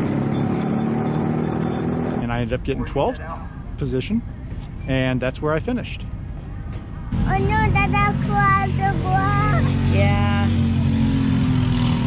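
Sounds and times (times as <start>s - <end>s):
kart engines droning: 0.0s - 2.2s, 7.1s - 12.0s.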